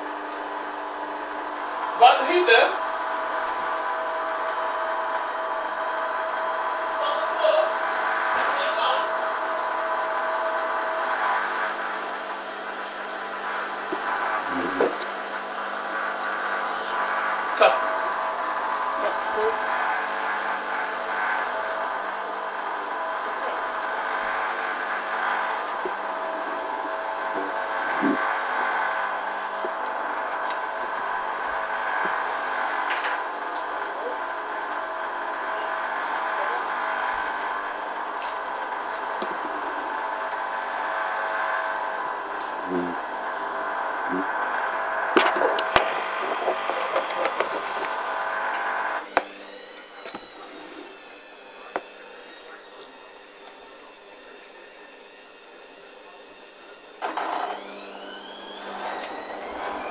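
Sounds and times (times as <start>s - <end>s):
washing machine running: 0.0s - 59.9s.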